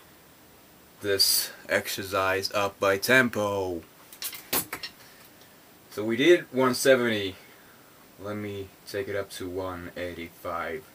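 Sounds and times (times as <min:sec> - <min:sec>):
faint room hiss: 0:00.0 - 0:10.9.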